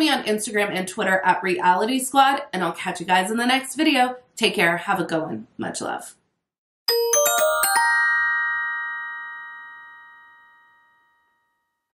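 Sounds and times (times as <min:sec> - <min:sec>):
bell-like chime chord: 0:06.9 - 0:11.8.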